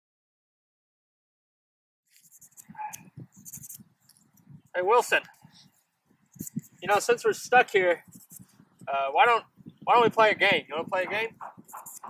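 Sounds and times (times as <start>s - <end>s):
dry sticks rustling and clicking: 2.1s - 4.5s, 6.2s - 7.0s, 11.4s - 12.0s.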